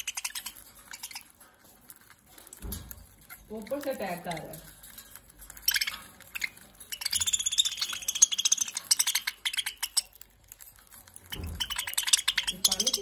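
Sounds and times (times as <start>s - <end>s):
budgerigars chattering: 0.0s - 1.3s, 5.6s - 10.2s, 11.3s - 13.0s.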